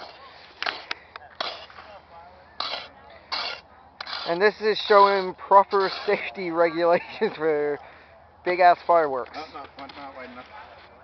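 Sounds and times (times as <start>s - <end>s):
shovel scraping dirt: 0.0s - 2.0s, 2.6s - 6.6s.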